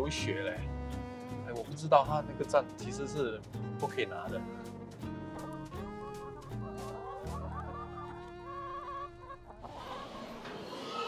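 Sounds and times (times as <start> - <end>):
background music: 0.0 - 9.5
hens clucking: 5.3 - 11.0.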